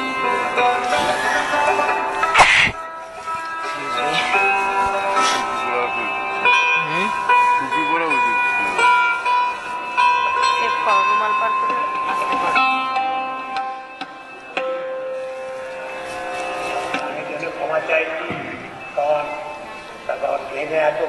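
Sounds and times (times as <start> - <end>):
sustained ringing strings: 0.0 - 21.0.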